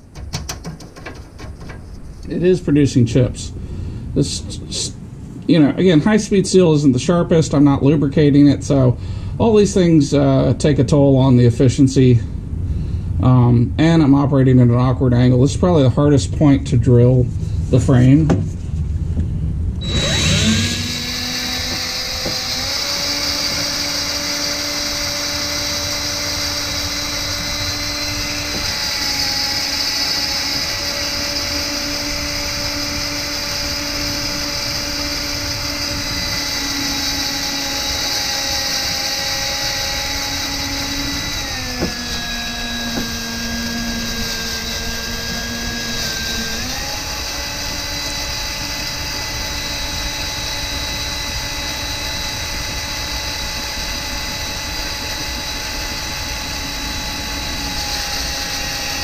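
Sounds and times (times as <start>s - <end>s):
power drill boring into steel: 19.8s - 59.0s.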